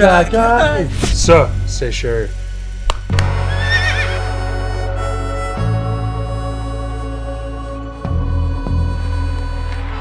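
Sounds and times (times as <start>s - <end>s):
background music: 0.0s - 10.0s
horse whinnying: 3.5s - 4.3s.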